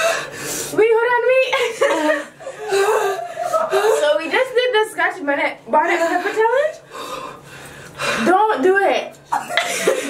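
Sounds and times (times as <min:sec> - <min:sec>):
women laughing: 0:01.3 - 0:04.3, 0:09.3 - 0:10.0.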